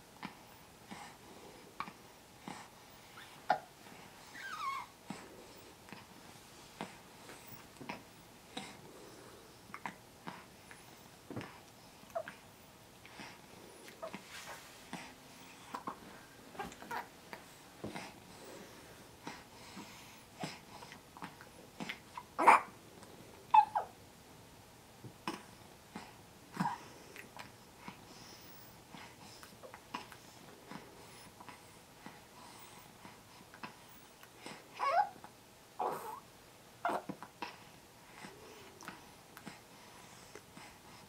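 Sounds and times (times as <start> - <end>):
baby cooing: 4.4 - 4.9, 16.6 - 17.1, 21.8 - 22.8, 23.5 - 24.0, 34.8 - 35.2, 35.8 - 36.2, 36.8 - 37.2.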